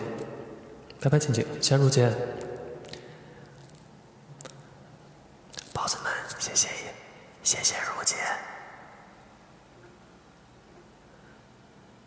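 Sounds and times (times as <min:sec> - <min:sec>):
man whispering: 0:05.6 - 0:08.9.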